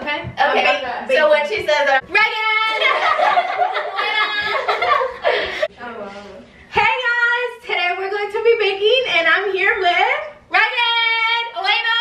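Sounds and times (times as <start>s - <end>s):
girls laughing and talking: 0.4s - 6.2s.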